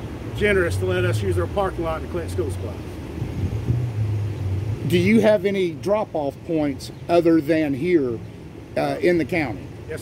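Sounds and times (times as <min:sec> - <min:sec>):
car engines rumbling: 0:00.0 - 0:10.0
road traffic: 0:00.0 - 0:10.0.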